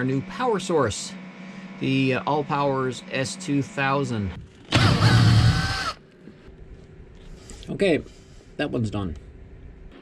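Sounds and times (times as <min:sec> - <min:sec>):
cordless drill whining into wood: 0:04.7 - 0:06.0.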